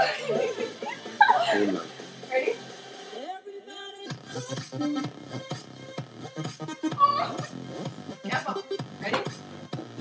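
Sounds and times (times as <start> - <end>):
loud music: 0.0 - 10.0
person vocal sound: 6.3 - 7.6.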